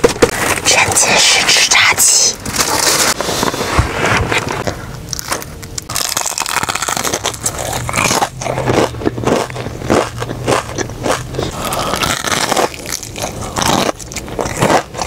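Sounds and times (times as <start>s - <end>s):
low steady hum: 0.0s - 15.0s
fried chicken crunching: 5.1s - 15.0s.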